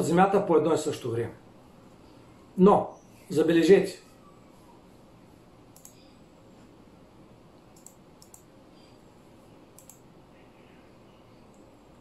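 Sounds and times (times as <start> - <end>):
faint room hiss: 0.0 - 12.0
computer mouse clicks: 5.7 - 6.1, 7.7 - 8.6, 9.7 - 10.1.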